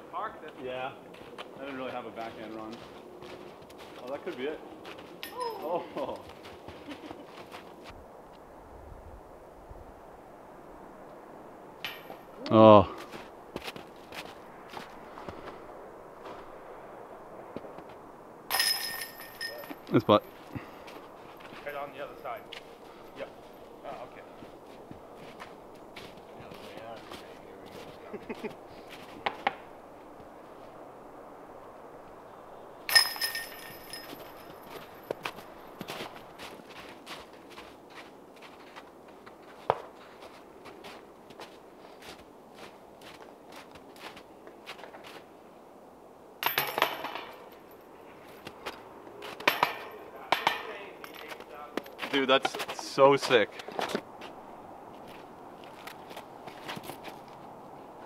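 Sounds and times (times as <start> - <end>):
footsteps in snow: 1.1 - 8.4, 13.0 - 16.6, 19.6 - 30.8, 33.6 - 45.3, 51.3 - 58.0
disc striking metal chains: 18.5 - 19.9, 32.9 - 35.1, 46.4 - 47.8, 49.4 - 51.3
rattling of chains and basket: 18.5 - 20.5, 32.9 - 35.2.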